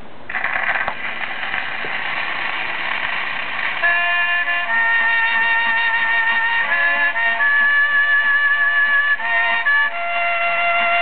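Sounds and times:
record surface hiss: 0.0s - 11.0s
harmonica melody: 0.3s - 11.0s
old country band music: 3.8s - 11.0s.

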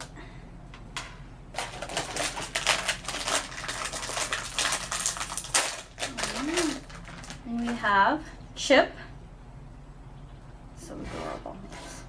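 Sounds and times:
foil bag crinkling and tearing: 1.5s - 7.8s.

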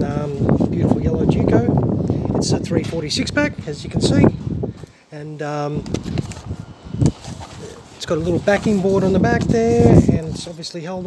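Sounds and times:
plastic and cardboard rustling: 5.8s - 10.9s.

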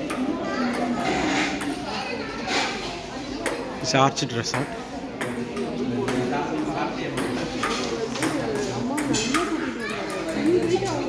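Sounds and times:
people talking in a hall: 0.0s - 11.0s.

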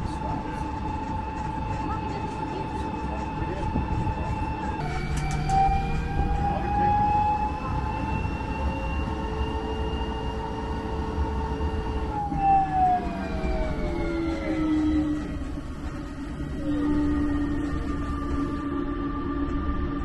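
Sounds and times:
low rolling rumble: 0.0s - 20.0s
tram drive whine: 0.0s - 20.0s.

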